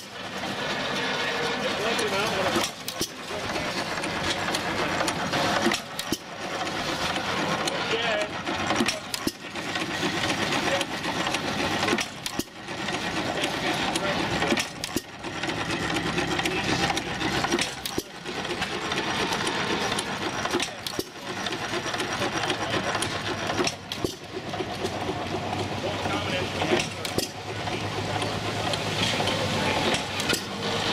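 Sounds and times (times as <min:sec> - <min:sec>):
gas engines clattering: 0:00.0 - 0:30.9.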